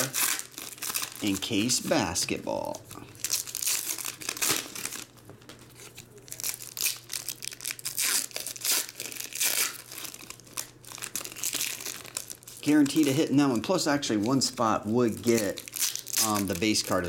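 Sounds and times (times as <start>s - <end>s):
foil wrappers tearing and crinkling: 0.0s - 17.0s.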